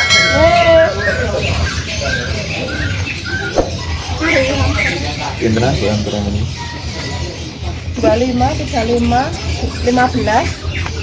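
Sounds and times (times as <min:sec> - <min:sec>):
caged birds chirping: 0:00.0 - 0:11.0.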